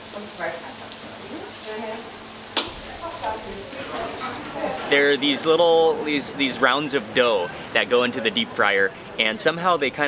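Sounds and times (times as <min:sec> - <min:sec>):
dough sizzling in hot oil: 0:00.0 - 0:03.9.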